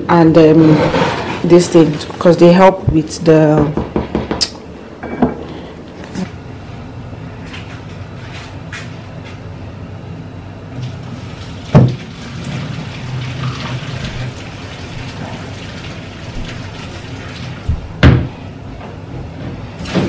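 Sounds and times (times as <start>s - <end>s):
water rinsing rice: 10.8s - 17.7s.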